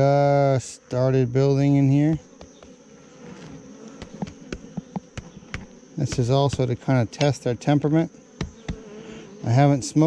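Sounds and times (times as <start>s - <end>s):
bees humming: 0.0s - 10.0s.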